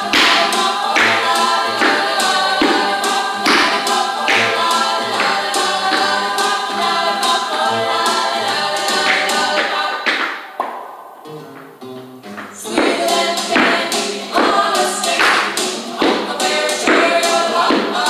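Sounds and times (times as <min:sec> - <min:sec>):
song with group singing and beat: 0:00.0 - 0:11.3, 0:12.4 - 0:18.0.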